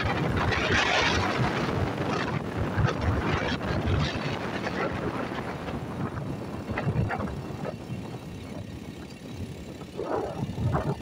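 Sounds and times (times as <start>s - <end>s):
car engine and tyres on wet road: 0.0s - 11.0s.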